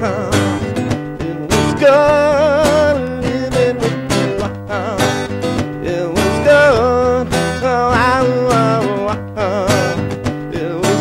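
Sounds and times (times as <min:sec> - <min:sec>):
acoustic guitar strumming: 0:00.0 - 0:11.0
person singing: 0:00.0 - 0:11.0.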